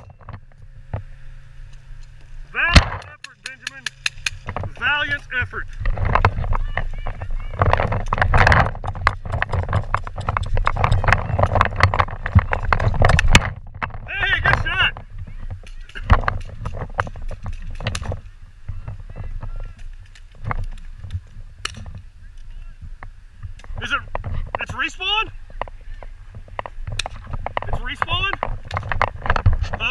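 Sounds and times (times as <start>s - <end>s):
wind rumbling on microphone: 0.0s - 3.2s, 4.0s - 29.9s
distant voices: 0.0s - 29.9s
footsteps on dirt and grass: 0.0s - 29.9s
sharp pops: 2.0s - 4.7s.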